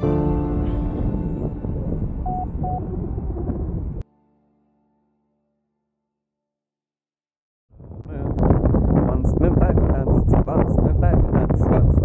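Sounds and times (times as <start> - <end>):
wind rushing over microphone: 0.0 - 4.0, 7.7 - 12.0
short beeps: 2.2 - 2.9.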